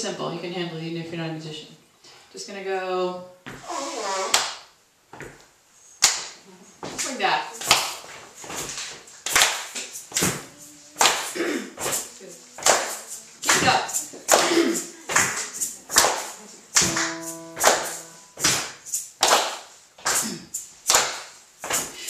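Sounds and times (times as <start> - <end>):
hands clapping a steady beat: 6.0 - 6.4, 7.6 - 22.0
held piano note: 16.8 - 18.7.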